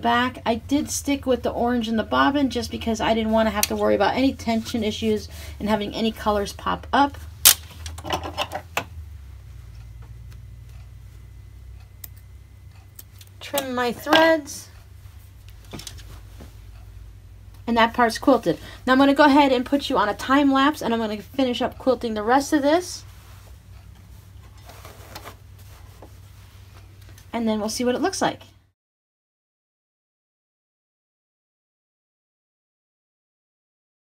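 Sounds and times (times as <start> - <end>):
low steady hum: 0.0 - 28.8
fabric being handled: 15.1 - 16.7, 23.0 - 27.2.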